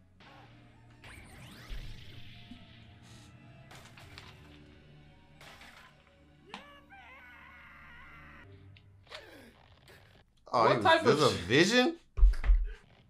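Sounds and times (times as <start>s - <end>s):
dramatic background music: 0.0s - 10.2s.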